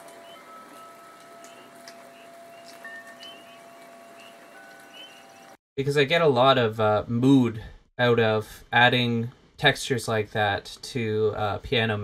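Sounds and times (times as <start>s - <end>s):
frogs chirping: 0.0s - 5.5s
light rain: 0.0s - 5.6s
wind chimes ringing: 0.0s - 5.6s.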